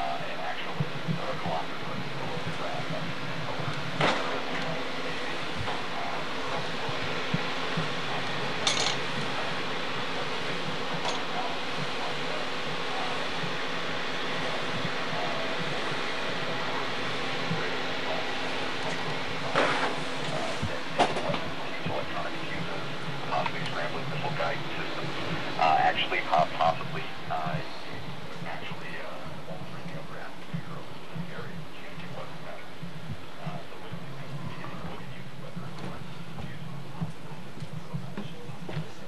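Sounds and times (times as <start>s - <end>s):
fans humming: 0.0s - 39.0s.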